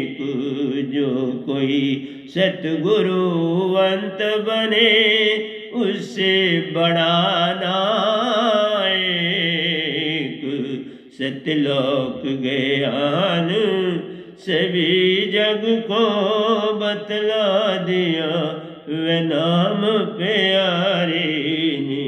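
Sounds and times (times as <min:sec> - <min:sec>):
man singing devotional song: 0:00.0 - 0:22.0.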